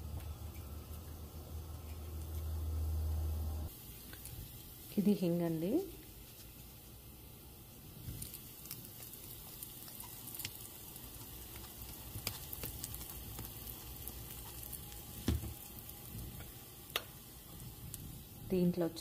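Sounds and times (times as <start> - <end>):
spices sizzling in hot ghee: 0.2 - 19.0.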